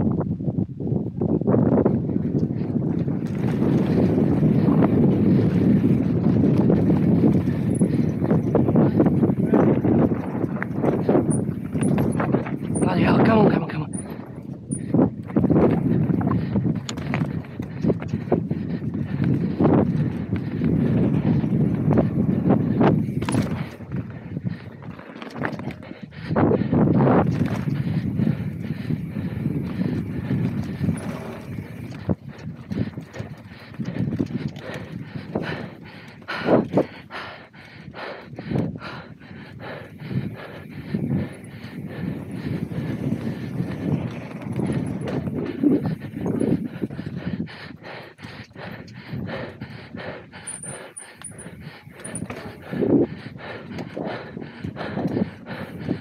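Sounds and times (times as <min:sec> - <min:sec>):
bike tyres rumbling over dirt: 0:01.1 - 0:37.3, 0:38.3 - 0:47.6, 0:50.4 - 0:56.0
bike knocks and rattles: 0:09.6 - 0:12.9, 0:22.9 - 0:24.1.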